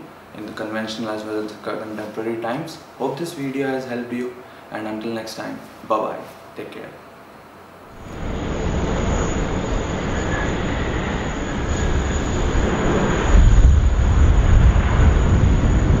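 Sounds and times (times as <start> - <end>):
jet engines at high power: 7.8 - 16.0.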